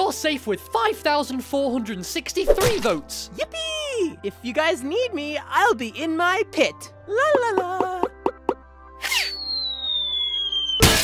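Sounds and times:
background music: 0.0 - 11.0
short swoosh: 2.4 - 3.0
cartoon pops: 9.0 - 10.0
high whistle falling in pitch: 9.0 - 11.0.

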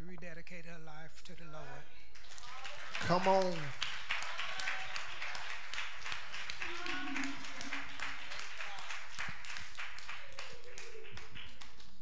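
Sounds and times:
congregation applauding: 2.2 - 12.0.

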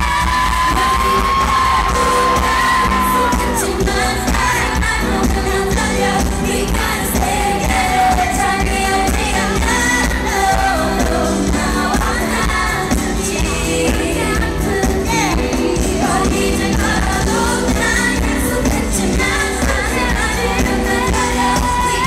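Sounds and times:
women singing pop live: 0.0 - 22.0.

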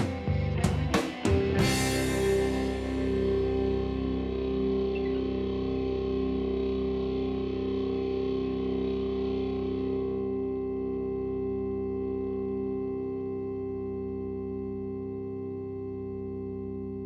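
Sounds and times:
electric guitar chord ringing: 0.0 - 17.0.

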